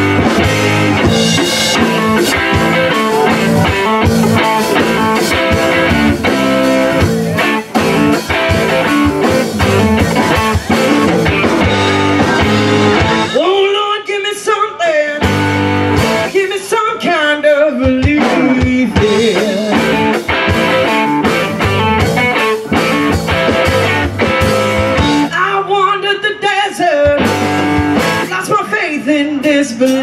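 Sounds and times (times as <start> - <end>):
electric bass: 0.0 - 13.4, 15.2 - 16.4, 18.3 - 25.4, 27.2 - 28.4
drum kit: 0.0 - 14.1, 15.2 - 16.8, 17.7 - 25.5, 27.0 - 28.6
electric guitar: 0.0 - 30.0.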